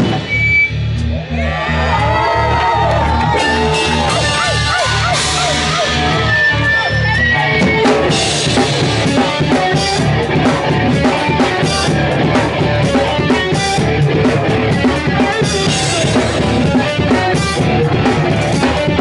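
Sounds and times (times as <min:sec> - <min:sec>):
punk band playing live: 0:00.0 - 0:19.0.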